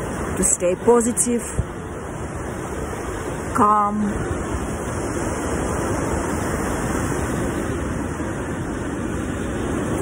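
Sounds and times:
ocean surf breaking on beach: 0.0s - 10.0s.

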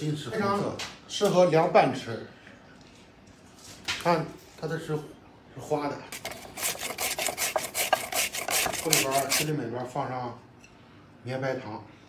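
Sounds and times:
radish rasping on a grater: 6.2s - 9.5s.

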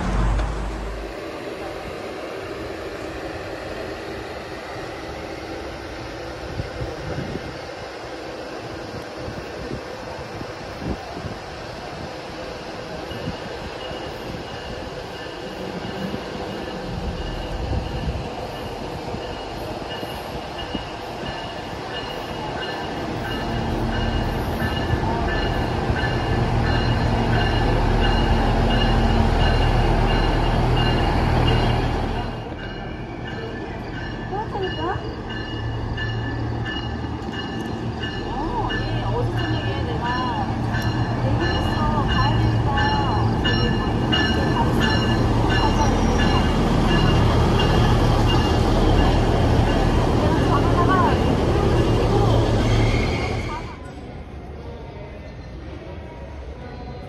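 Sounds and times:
diesel train engine rumble: 0.0s - 57.0s.

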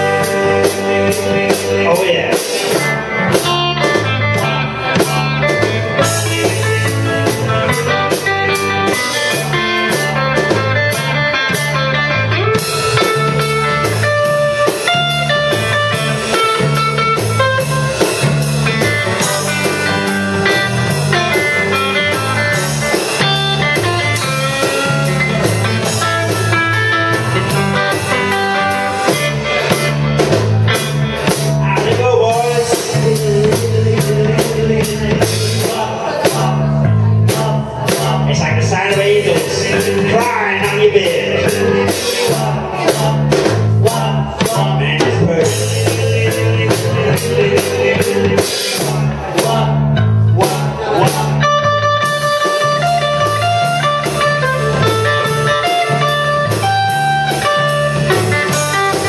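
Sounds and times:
drum kit beat: 0.0s - 59.0s
electric bass line: 0.0s - 59.0s
electric guitar: 0.0s - 59.0s.

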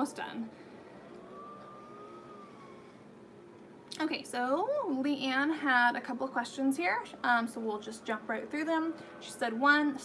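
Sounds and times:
distant leaf blower: 0.0s - 3.9s, 6.3s - 10.0s.

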